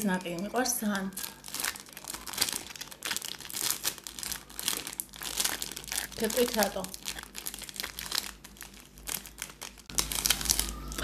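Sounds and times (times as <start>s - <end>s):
plastic wrapper crinkling: 0.0s - 11.0s.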